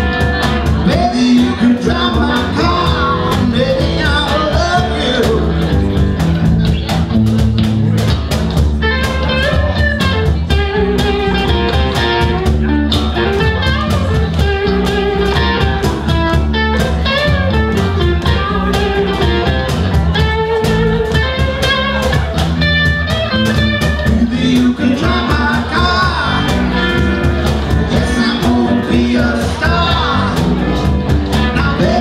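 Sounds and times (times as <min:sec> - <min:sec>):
bass guitar: 0:00.0 - 0:32.0
drum beat: 0:00.0 - 0:32.0
electric guitar: 0:00.0 - 0:32.0.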